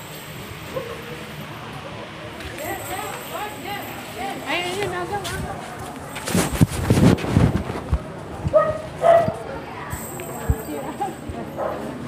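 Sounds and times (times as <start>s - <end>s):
phone microphone handling bumps: 6.2s - 9.4s.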